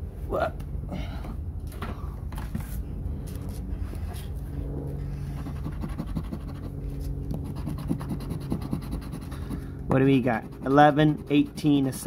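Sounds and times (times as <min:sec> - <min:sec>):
steady low hum: 0:00.0 - 0:12.0
lottery ticket being scratched: 0:05.4 - 0:06.7, 0:07.3 - 0:12.0.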